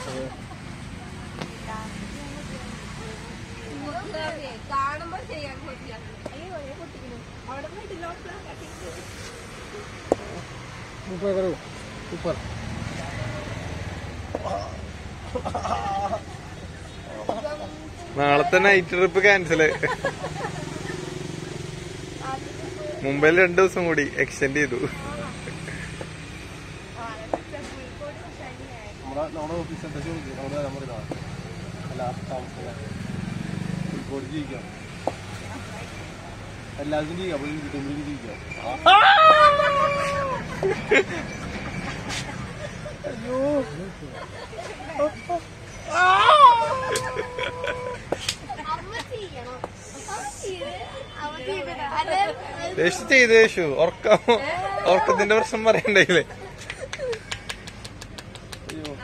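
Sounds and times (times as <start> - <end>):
people's voices: 0.0 - 59.0.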